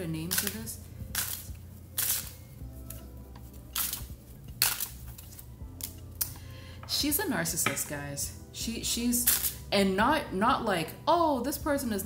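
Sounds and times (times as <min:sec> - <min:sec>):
faint background music: 0:00.0 - 0:12.0
cards being shuffled: 0:00.3 - 0:06.2
sharp card snaps: 0:03.8 - 0:06.3.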